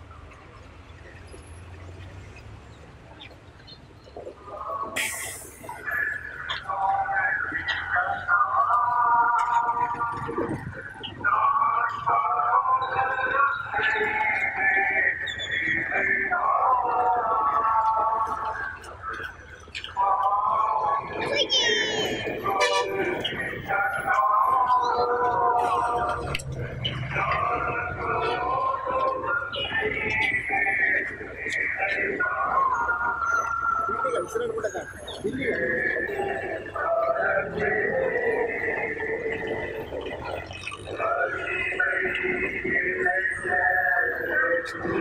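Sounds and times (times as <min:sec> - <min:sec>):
people's voices with drawn-out tones: 0:00.0 - 0:45.0.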